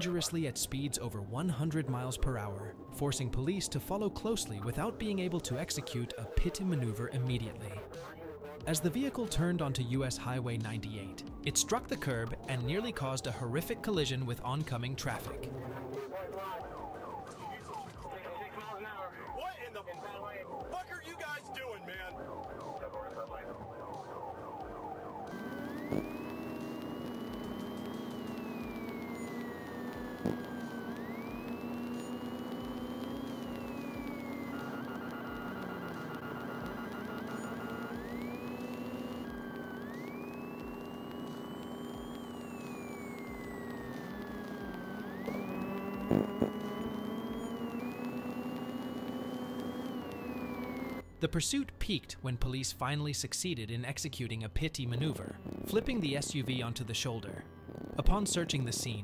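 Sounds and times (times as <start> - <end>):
police siren wailing: 0.0 - 51.1, 54.9 - 59.0
rapid pulsing siren tone: 0.0 - 51.1, 54.9 - 59.0
steady low hum: 24.8 - 51.1.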